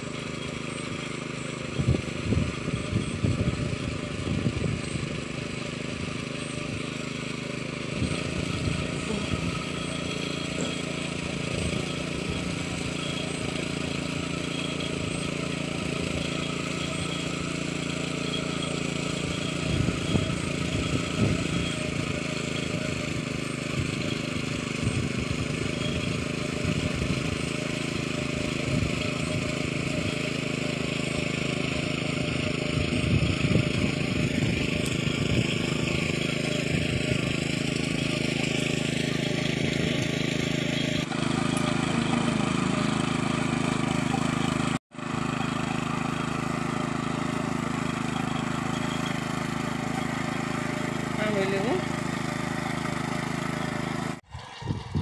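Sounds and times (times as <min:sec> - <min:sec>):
power tiller engine running: 0:00.0 - 0:55.0.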